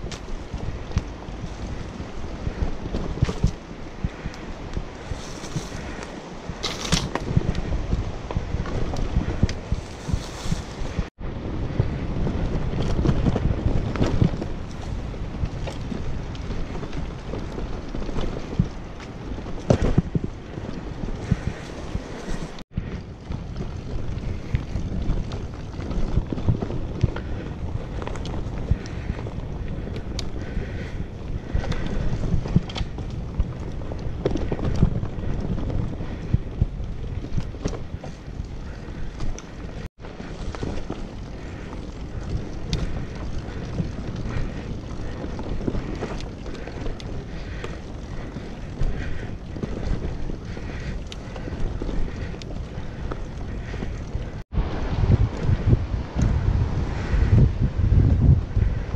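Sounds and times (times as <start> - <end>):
bicycle frame rattling: 0.0 - 54.5, 55.3 - 58.9
bicycle tyre rumble on dirt: 0.0 - 58.9
wind on microphone: 0.0 - 58.9.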